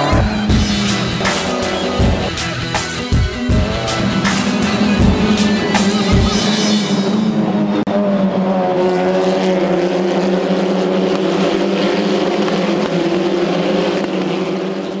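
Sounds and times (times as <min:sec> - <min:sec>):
background music: 0:00.0 - 0:07.9
race car engines at high revs: 0:00.0 - 0:15.0.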